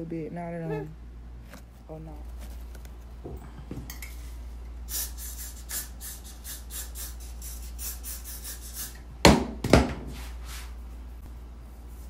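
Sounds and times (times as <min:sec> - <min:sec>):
loud knocks: 0:09.2 - 0:10.0.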